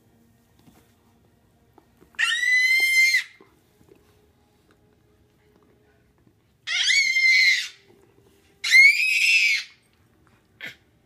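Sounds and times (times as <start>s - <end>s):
squeaky dog toy squeak: 2.2s - 3.4s, 6.7s - 7.8s, 8.6s - 9.8s.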